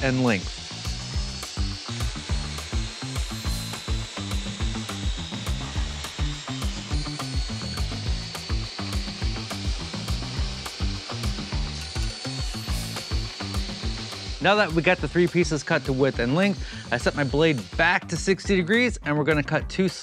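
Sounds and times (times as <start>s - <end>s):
background music with beat: 0.0s - 20.0s
table saw cutting wood: 0.0s - 20.0s.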